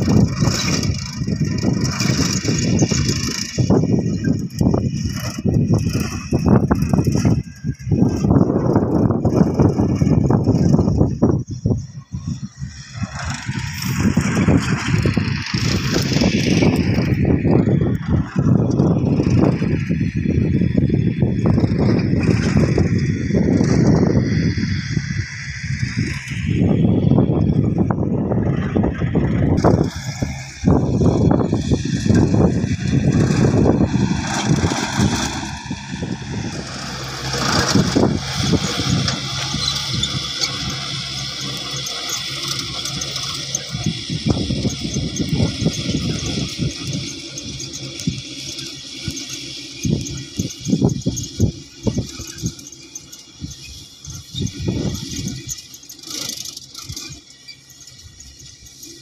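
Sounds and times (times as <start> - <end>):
tractor engine running: 0.0 - 59.0.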